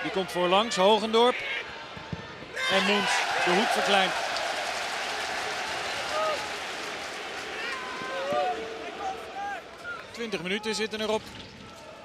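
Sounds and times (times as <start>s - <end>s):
stadium crowd roar: 0.0s - 10.4s
calls and shouts from crowd: 0.2s - 10.4s.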